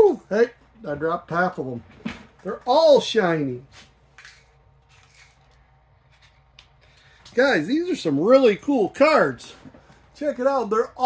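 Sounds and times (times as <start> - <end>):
trading cards clicking and rustling: 4.2 - 7.3.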